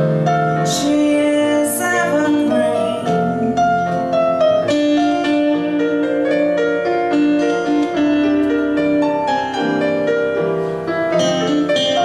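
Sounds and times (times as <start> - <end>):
woman singing: 0.6 - 4.2.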